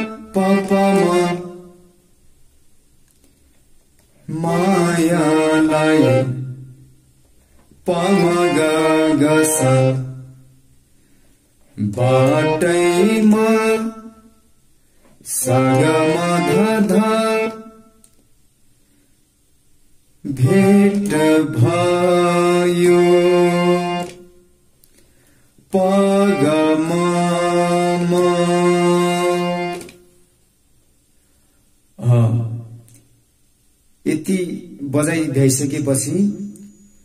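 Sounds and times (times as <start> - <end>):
harmonium melody: 0.0 - 1.8, 4.3 - 6.6, 7.8 - 10.2, 11.9 - 14.0, 15.3 - 17.7, 20.3 - 24.3, 25.7 - 30.1
person singing: 0.0 - 1.9, 4.2 - 6.6, 7.8 - 10.2, 11.8 - 14.3, 15.2 - 17.9, 20.2 - 24.2, 25.7 - 30.0, 32.0 - 32.8.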